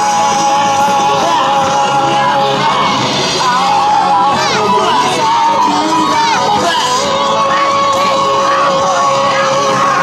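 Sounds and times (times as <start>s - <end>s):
loud rock dance music: 0.0s - 10.0s
dancers shouting: 0.7s - 10.0s.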